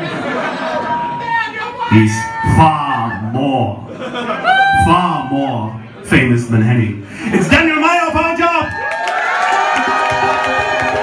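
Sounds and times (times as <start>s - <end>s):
audience cheering: 8.4s - 11.0s.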